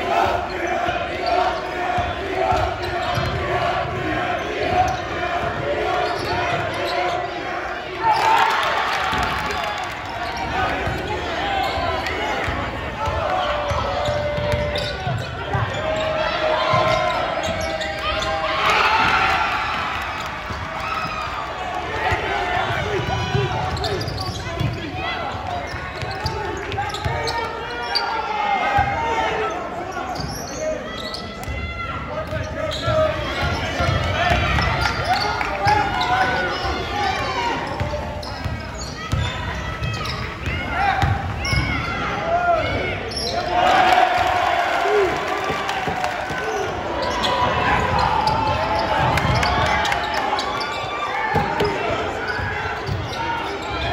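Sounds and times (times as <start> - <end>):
spectators chattering and shouting: 0.0 - 53.9
voices of players and crowd: 0.0 - 53.9
sneakers squeaking: 0.2 - 53.9
basketball bouncing: 41.0 - 41.6.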